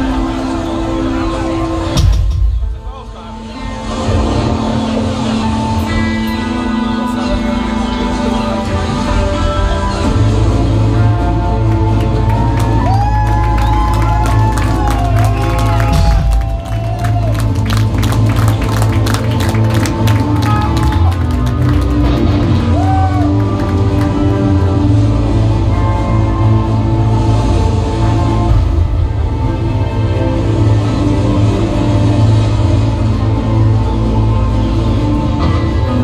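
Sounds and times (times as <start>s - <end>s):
live band droning: 0.0s - 36.0s
drum and cymbal hits: 1.9s - 2.9s
heavy guitar and bass chords: 3.3s - 36.0s
heavy low rumble: 9.1s - 36.0s.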